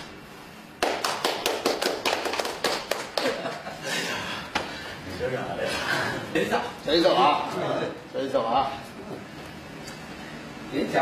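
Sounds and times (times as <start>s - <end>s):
people clapping: 0.8s - 3.8s.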